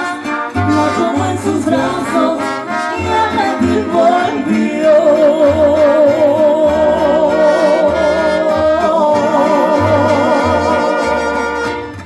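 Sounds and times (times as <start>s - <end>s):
mariachi band playing: 0.0s - 12.0s.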